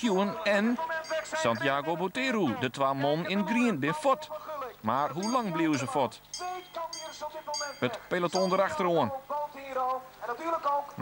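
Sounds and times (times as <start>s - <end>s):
man speaking: 0.0s - 11.0s.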